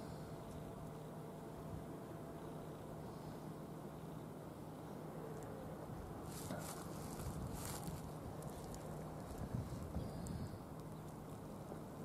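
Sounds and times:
soft footsteps on dirt path: 6.2s - 10.2s.

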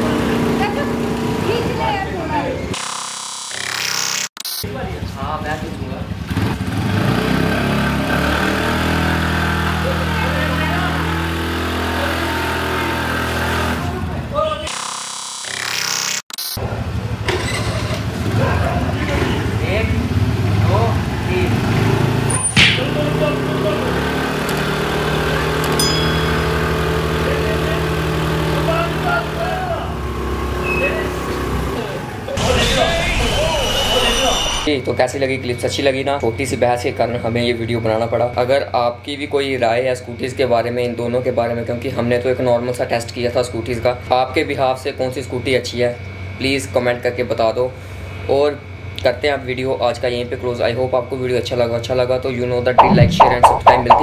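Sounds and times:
scooter engines revving high: 0.0s - 4.1s, 5.7s - 15.4s, 18.0s - 32.4s.

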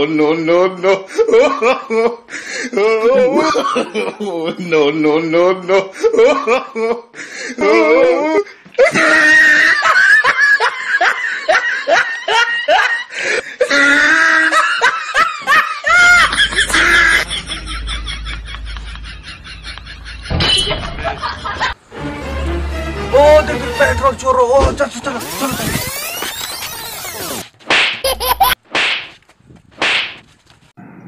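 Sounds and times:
person laughing: 0.8s - 7.0s, 7.6s - 13.0s, 13.6s - 21.8s, 28.0s - 28.6s
short squeal: 25.3s - 27.4s
sharp whip-like swishes: 28.7s - 29.2s, 29.8s - 30.3s.

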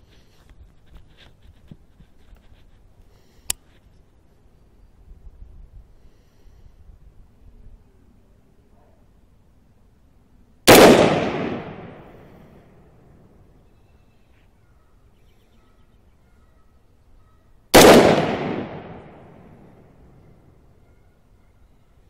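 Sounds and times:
rifle shots with echo: 10.7s - 12.5s, 17.7s - 20.0s.

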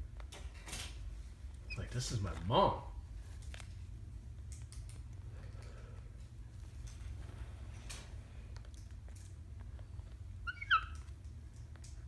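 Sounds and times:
parrot squeaky call: 10.4s - 11.1s.

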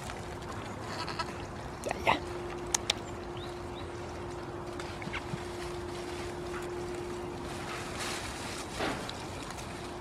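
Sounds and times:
low background hum: 0.0s - 10.0s
goat bleating: 0.8s - 1.4s.

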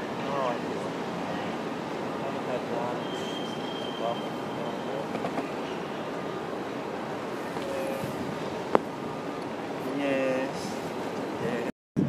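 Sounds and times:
distant voices: 0.0s - 11.7s
traffic: 0.0s - 11.7s
thin high squeal: 3.0s - 5.0s
wind noise: 7.2s - 9.5s, 10.8s - 12.0s.

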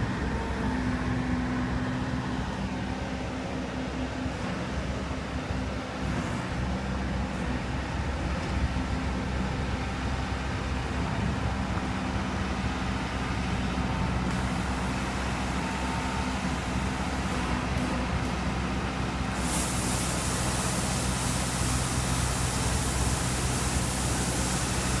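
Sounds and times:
broad rushing noise: 0.0s - 25.0s
road sweeper engine hum: 0.0s - 25.0s.

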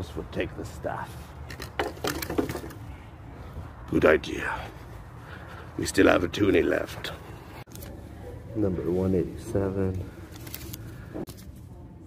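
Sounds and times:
wooden knocks and cracks: 1.5s - 2.8s.

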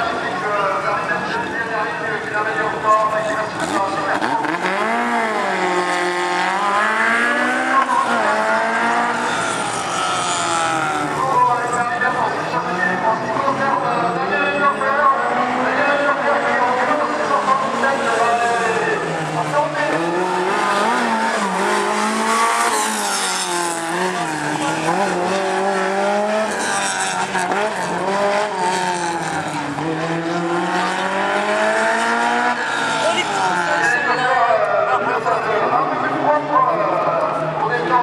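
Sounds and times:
car engine revving: 3.0s - 11.7s, 14.8s - 34.4s.

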